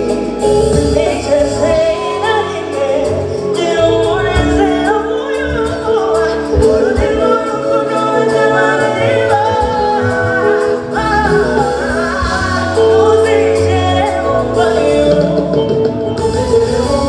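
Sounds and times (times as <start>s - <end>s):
bass: 0.0s - 17.0s
drums: 0.0s - 17.0s
woman singing: 0.0s - 17.0s.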